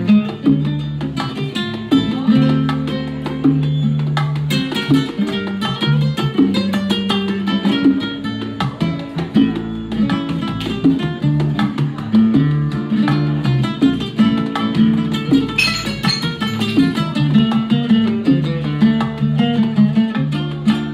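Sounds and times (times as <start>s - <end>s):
bongos: 0.0s - 20.9s
electric bass: 0.0s - 20.9s.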